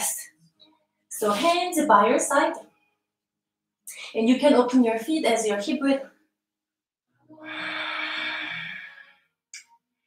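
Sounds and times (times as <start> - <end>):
person exhaling: 7.4 - 9.1.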